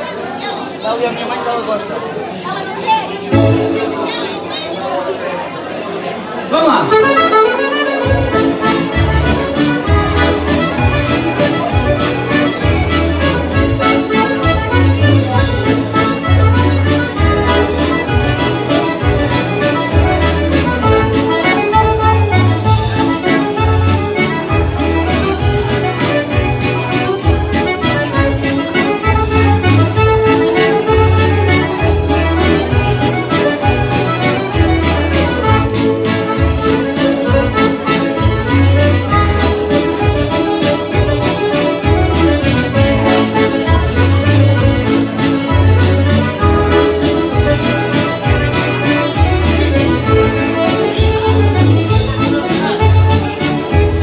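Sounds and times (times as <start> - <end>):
accordion playing dance tune: 3.0 - 5.2, 6.5 - 54.0.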